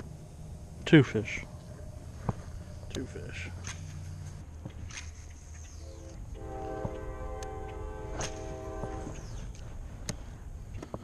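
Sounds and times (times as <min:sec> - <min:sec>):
distant train horn: 0:05.8 - 0:09.6.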